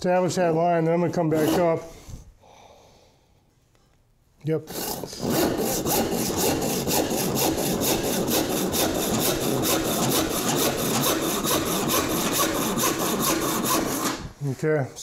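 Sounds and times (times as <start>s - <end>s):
hand saw cutting wood: 1.0s - 1.9s, 4.6s - 14.4s.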